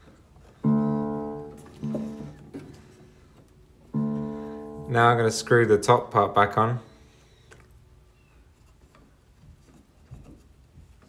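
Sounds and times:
piano notes: 0:00.6 - 0:07.0.

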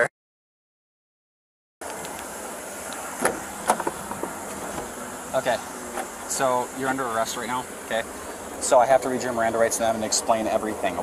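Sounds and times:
outdoor background noise: 0:01.8 - 0:11.0.

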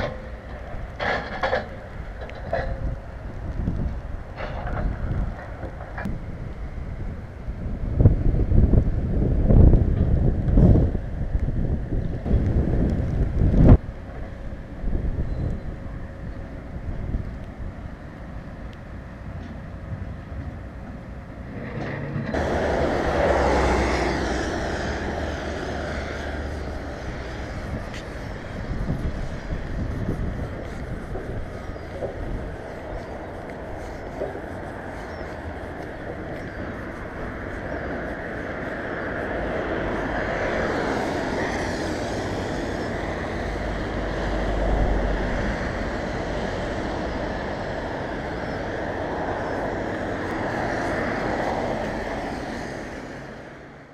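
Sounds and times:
road traffic on wet road: 0:00.0 - 0:53.9
wind buffeting microphone: 0:00.0 - 0:53.9
vehicle passing: 0:21.4 - 0:53.9.

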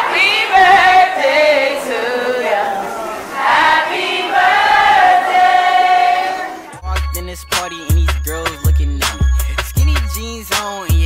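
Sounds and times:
voices singing sliding notes: 0:00.0 - 0:10.1.

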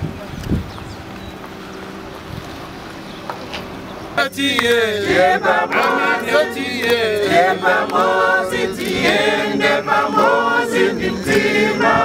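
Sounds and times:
wind buffeting microphone: 0:00.0 - 0:01.4, 0:11.0 - 0:12.0.

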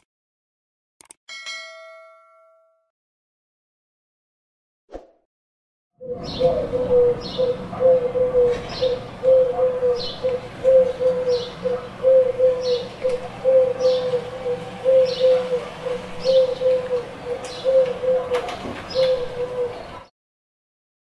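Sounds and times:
pigeon cooing: 0:06.0 - 0:20.1.

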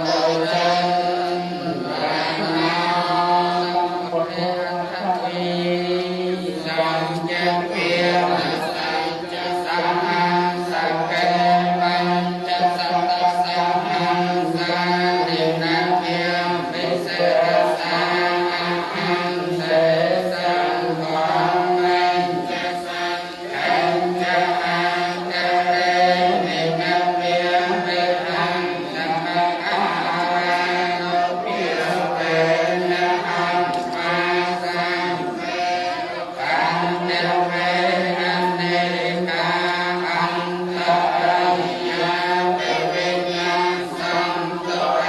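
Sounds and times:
group chanting: 0:00.0 - 0:45.0.

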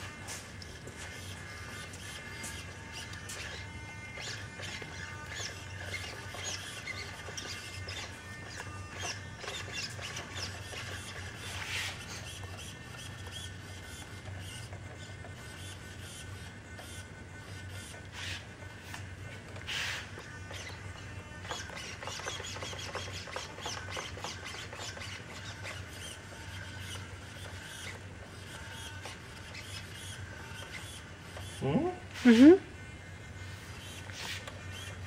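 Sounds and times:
servo motors whining: 0:00.0 - 0:35.0.

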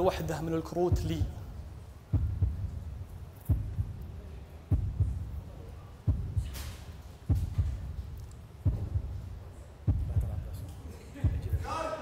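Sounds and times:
deep heartbeat thumps: 0:00.0 - 0:10.6, 0:11.2 - 0:11.7
low hum: 0:00.9 - 0:11.6.

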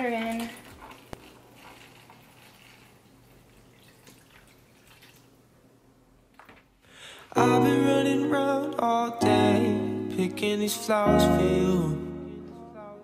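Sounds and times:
water trickling and splashing: 0:00.0 - 0:05.5.

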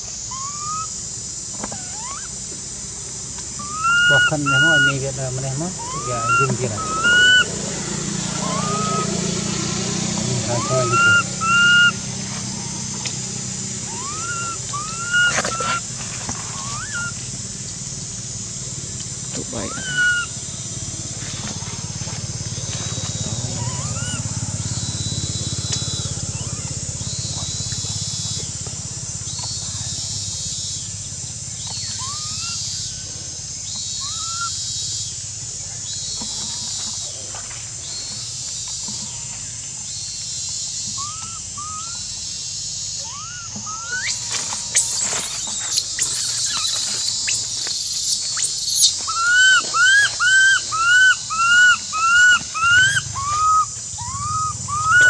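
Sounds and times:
high-pitched background drone: 0:00.0 - 0:30.6, 0:40.8 - 0:55.0
baby monkey crying: 0:00.3 - 0:00.9, 0:01.6 - 0:02.4, 0:03.6 - 0:12.8, 0:13.7 - 0:15.8, 0:16.6 - 0:17.2, 0:19.4 - 0:20.4, 0:23.2 - 0:24.4, 0:25.8 - 0:26.8, 0:31.9 - 0:33.0, 0:34.0 - 0:34.6, 0:41.0 - 0:42.1, 0:43.0 - 0:55.0.

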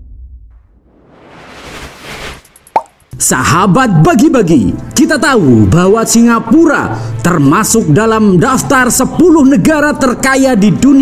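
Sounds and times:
rising whoosh: 0:00.4 - 0:03.2.

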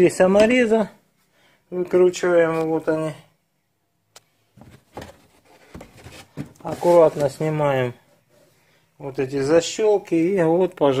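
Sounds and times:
soft knocks and rustles: 0:04.5 - 0:07.6.

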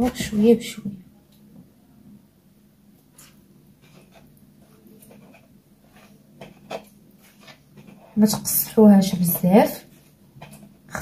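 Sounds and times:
hands mixing dough in a bowl: 0:02.8 - 0:11.0.

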